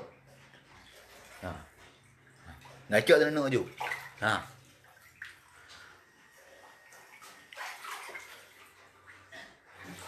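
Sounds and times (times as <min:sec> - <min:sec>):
water splashing on tiled floor: 0:00.0 - 0:10.0.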